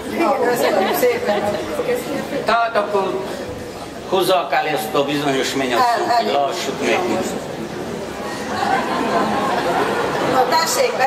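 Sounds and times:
group of people chattering: 0:00.0 - 0:11.0.

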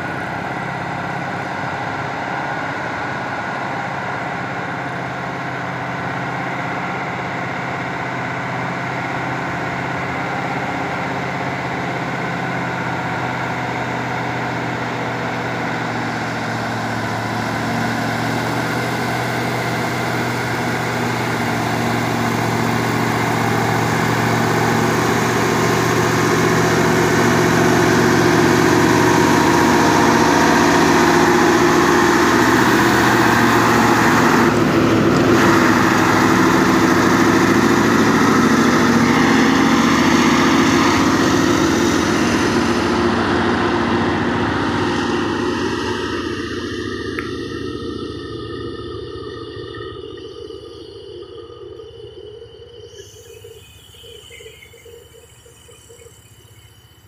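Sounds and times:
dump truck diesel engine: 0:00.0 - 0:57.0.

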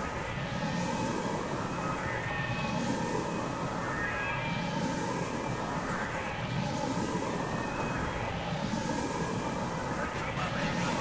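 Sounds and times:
harsh noise electronic music: 0:10.2 - 0:11.0.

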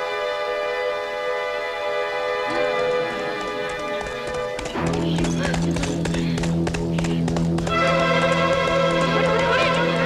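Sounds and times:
background music with low tone: 0:00.0 - 0:10.0
horse hooves clip-clopping: 0:02.5 - 0:10.0.

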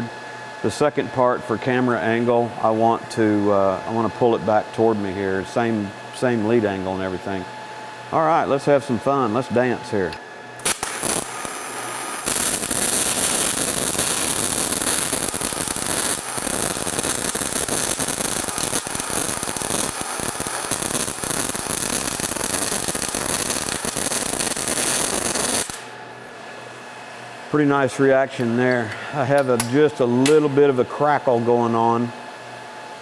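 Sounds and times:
welding arc hissing and crackling: 0:10.6 - 0:26.0.

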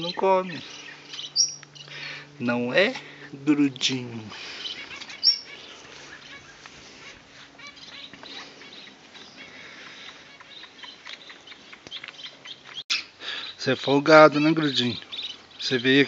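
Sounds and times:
birds chirping: 0:00.0 - 0:16.0.

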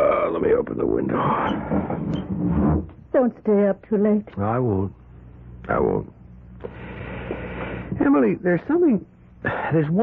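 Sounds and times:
window sliding open scrape: 0:01.4 - 0:02.9.

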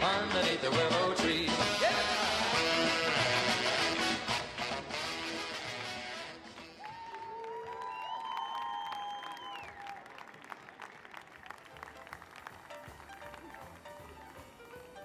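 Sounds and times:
dance music: 0:00.0 - 0:06.8
audience applauding: 0:06.4 - 0:15.0.

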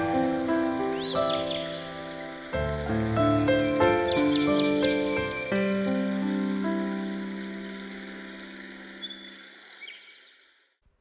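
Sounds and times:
held piano chord: 0:00.0 - 0:09.3
soft forest ambience: 0:00.0 - 0:10.8.

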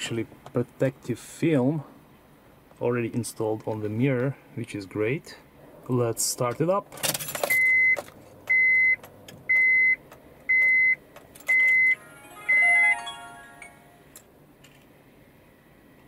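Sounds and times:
electronic beeps: 0:11.5 - 0:14.0
descending startup chime: 0:11.7 - 0:14.2.

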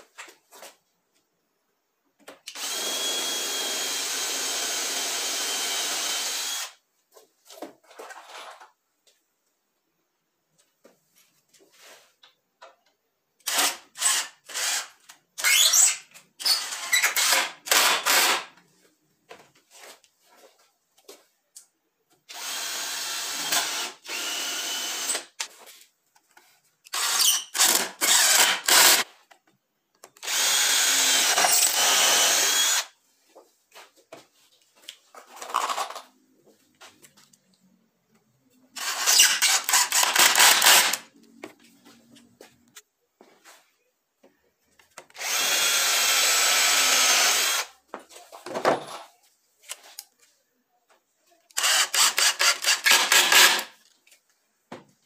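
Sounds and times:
cordless drill drilling: 0:02.5 - 0:06.8, 0:13.4 - 0:18.5, 0:22.3 - 0:25.3, 0:26.9 - 0:29.1, 0:30.2 - 0:33.0, 0:38.8 - 0:41.0, 0:45.1 - 0:47.7, 0:51.6 - 0:53.7.

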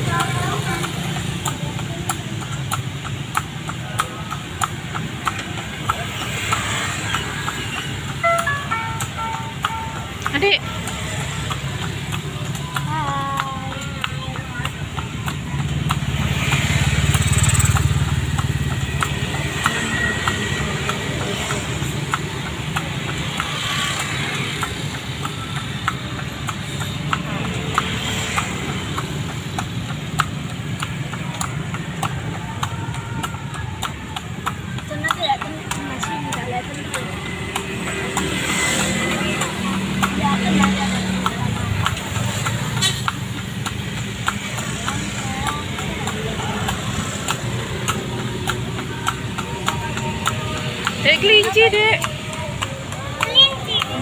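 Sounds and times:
cart rumbling: 0:00.0 - 0:54.0
horse hooves clopping on pavement: 0:00.0 - 0:54.0.

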